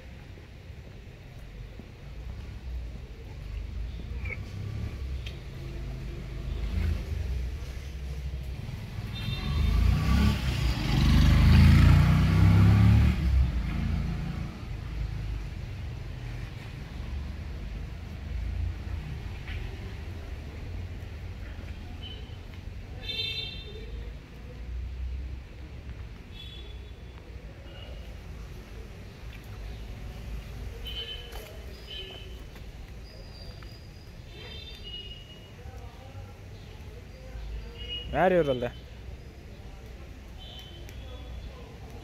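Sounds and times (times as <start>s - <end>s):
vehicle passing by: 4.4s - 15.3s.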